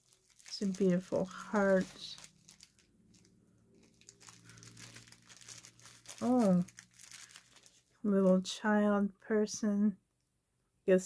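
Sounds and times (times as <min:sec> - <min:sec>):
plastic package crinkling: 0:00.0 - 0:08.0.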